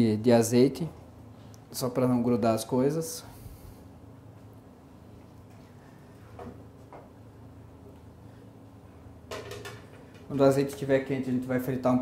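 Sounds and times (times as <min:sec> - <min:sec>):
frying pan clattering on burner grate: 0:09.3 - 0:09.9.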